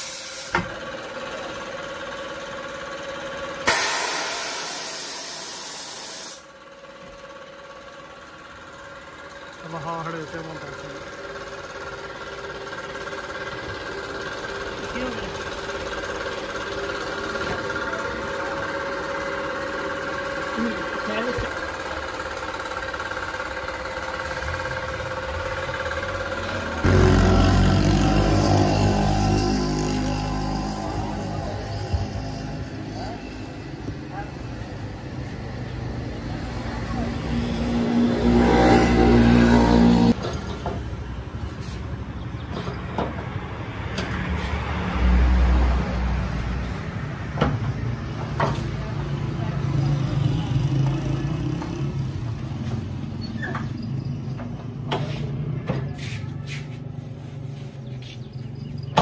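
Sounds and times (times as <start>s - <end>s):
vehicle engines running: 0.0s - 59.0s.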